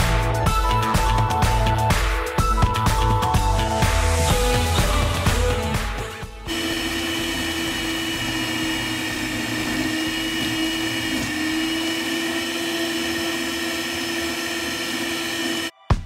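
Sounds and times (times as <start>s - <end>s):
stand mixer motor whining: 4.5s - 15.7s.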